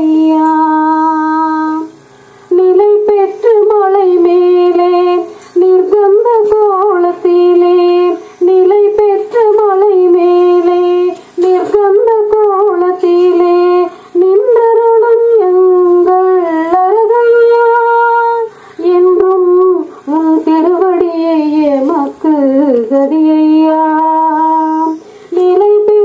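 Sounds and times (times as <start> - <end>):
woman singing unaccompanied: 0.0 - 26.0.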